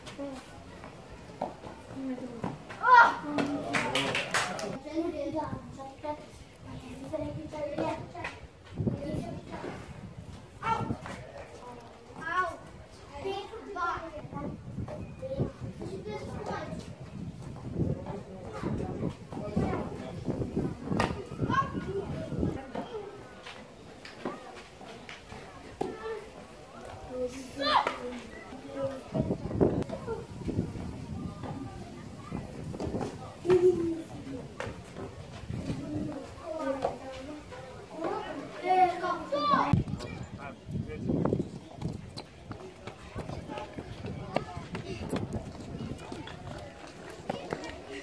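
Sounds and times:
children calling and talking: 0.0s - 48.0s.

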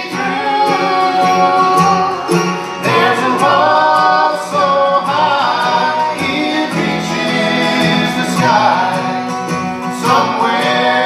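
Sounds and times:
banjo: 0.0s - 11.0s
mandolin: 0.0s - 11.0s
picked acoustic guitar: 0.0s - 11.0s
voices singing: 0.0s - 11.0s
plucked upright bass: 0.4s - 8.7s.

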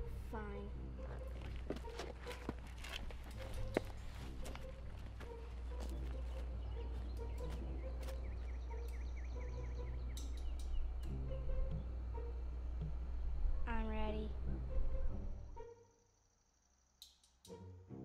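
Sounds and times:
low steady hum: 0.0s - 15.6s
small bird chirping: 5.6s - 11.9s.

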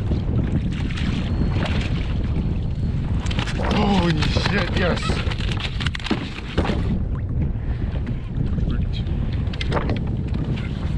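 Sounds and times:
wind rumbling on microphone: 0.0s - 10.9s.

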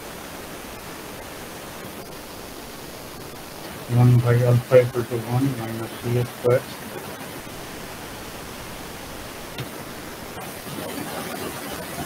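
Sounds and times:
microphone background hiss: 0.0s - 12.0s.

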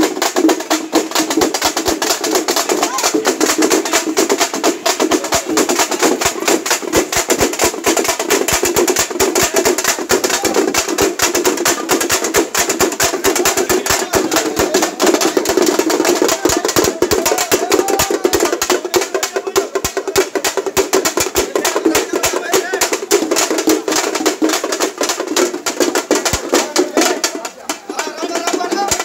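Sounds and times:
frame drums beaten with sticks: 0.0s - 29.0s.

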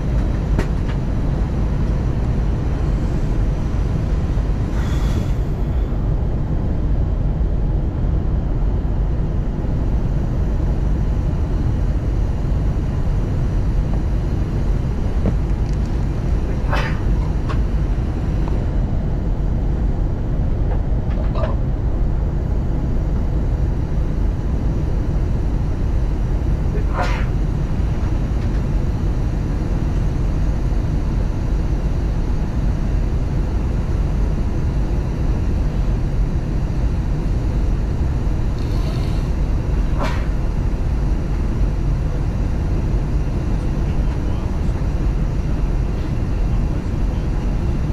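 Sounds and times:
airliner cabin rumble: 0.0s - 47.9s.

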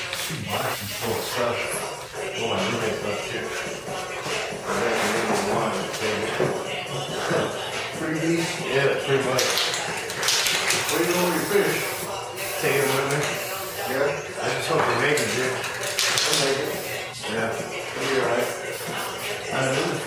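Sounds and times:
spray paint can hissing: 0.0s - 1.4s, 10.2s - 14.0s, 15.9s - 17.1s, 18.4s - 19.4s
background voices: 0.0s - 20.0s.

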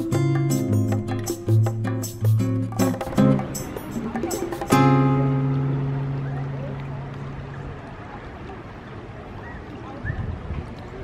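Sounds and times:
plucked-string chord: 0.0s - 7.6s
creek running over rocks: 3.4s - 11.0s.

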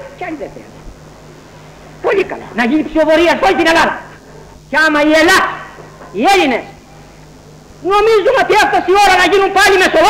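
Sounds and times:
recording hum: 0.0s - 10.0s
person speaking: 2.0s - 6.8s.

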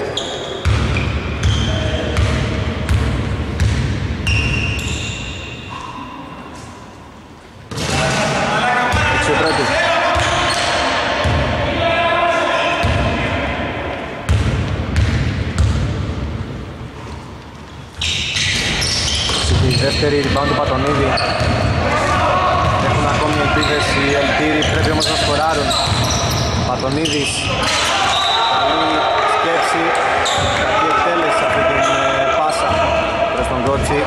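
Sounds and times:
basketball bouncing on court: 0.6s - 4.9s, 14.3s - 16.3s, 18.5s - 21.8s, 22.6s - 24.0s, 24.6s - 27.2s, 30.3s - 30.6s
players' voices: 7.7s - 14.3s, 19.4s - 34.0s.

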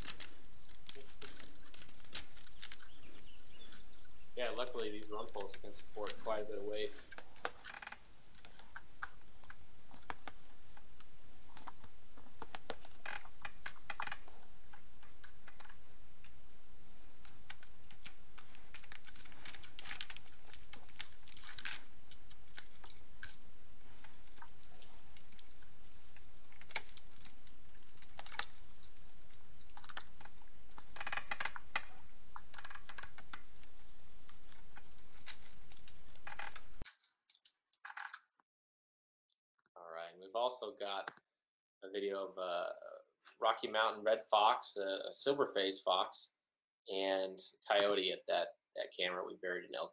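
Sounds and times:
bear scratching and clicking: 0.0s - 15.9s, 17.2s - 38.0s
steady hiss: 0.0s - 36.8s.

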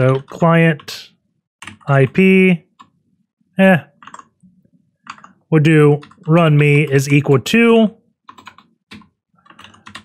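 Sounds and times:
keystrokes on computer keyboard: 1.6s - 3.0s, 3.9s - 7.0s, 8.2s - 10.0s.

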